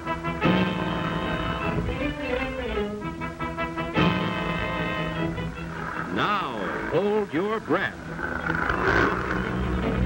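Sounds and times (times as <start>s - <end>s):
orchestral film score: 0.0s - 10.0s.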